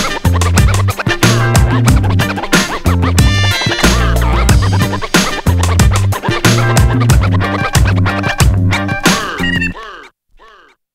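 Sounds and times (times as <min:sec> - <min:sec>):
hip hop backing track: 0:00.0 - 0:09.8
turntable scratching: 0:00.0 - 0:10.7.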